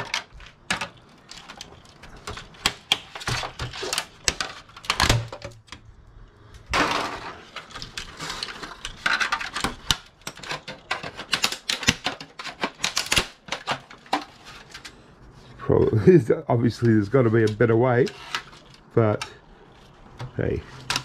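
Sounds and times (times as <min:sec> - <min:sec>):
plastic clips clicking and snapping: 0:07.5 - 0:15.0.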